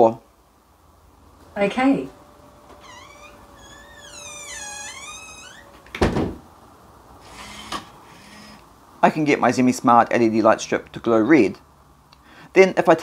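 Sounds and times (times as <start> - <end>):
door closer motor hum: 2.7 - 5.8, 7.2 - 8.6
high squeal: 2.8 - 5.8
door shutting knock: 3.9 - 6.4.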